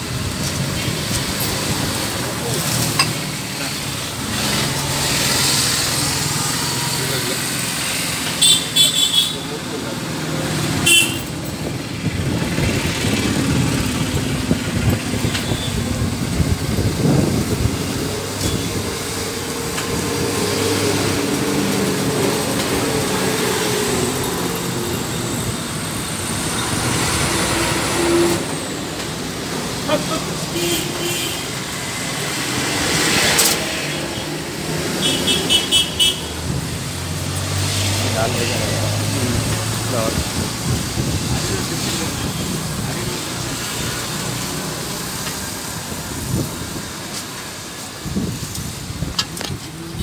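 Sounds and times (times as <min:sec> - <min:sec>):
traffic rumble: 0:00.0 - 0:50.0
car horn toots: 0:10.8 - 0:11.3.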